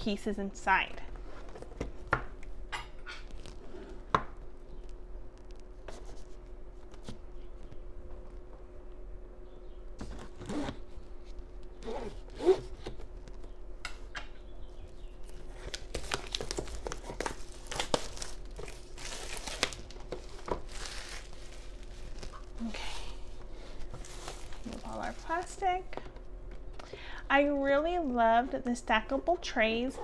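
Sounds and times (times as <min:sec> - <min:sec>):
plastic packaging crinkling: 0:15.2 - 0:26.0.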